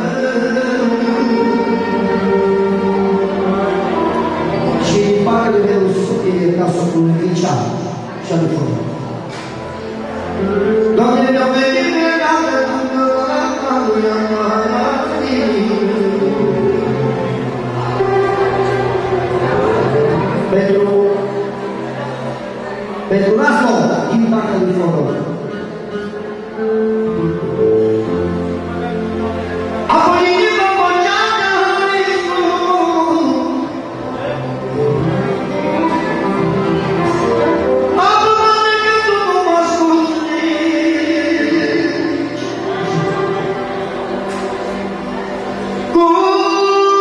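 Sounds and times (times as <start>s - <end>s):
live band instrumental music: 0.0s - 47.0s.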